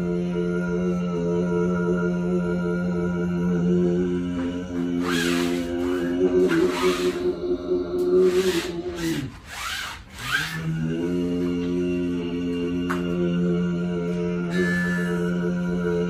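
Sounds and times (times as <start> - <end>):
overtone singing drone: 0.0 - 16.0.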